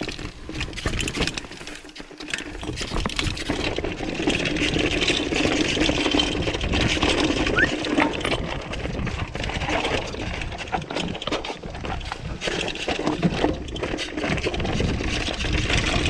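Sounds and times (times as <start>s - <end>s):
bike rattling: 0.0s - 16.0s
tyres crunching over rocks: 0.0s - 16.0s.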